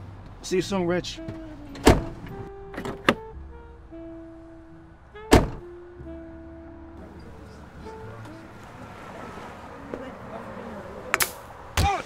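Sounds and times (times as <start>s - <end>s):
soft background music: 0.5s - 10.5s
car door thumping shut: 1.3s - 3.3s, 5.3s - 5.7s.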